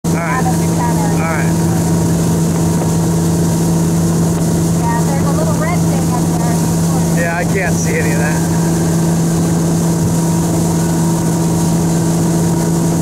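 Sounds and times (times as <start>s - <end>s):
churning wake water: 0.0s - 13.0s
motorboat engine running: 0.0s - 13.0s.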